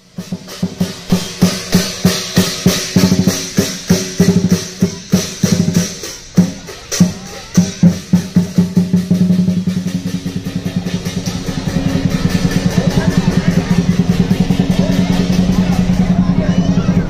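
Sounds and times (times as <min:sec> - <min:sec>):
cymbals clashing: 0:00.0 - 0:17.0
drum beaten in fast roll: 0:00.0 - 0:17.0.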